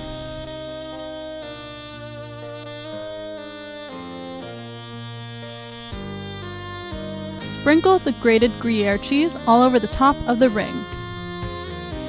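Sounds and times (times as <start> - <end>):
saxophone playing long notes: 0.0 - 12.0.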